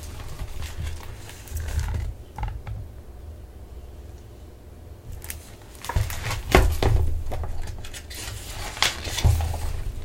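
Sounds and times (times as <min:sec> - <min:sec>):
book being handled: 0:00.0 - 0:02.2, 0:05.1 - 0:10.0.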